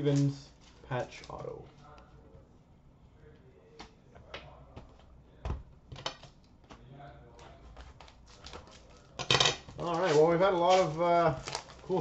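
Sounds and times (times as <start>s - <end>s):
card handling noise: 7.4s - 12.0s.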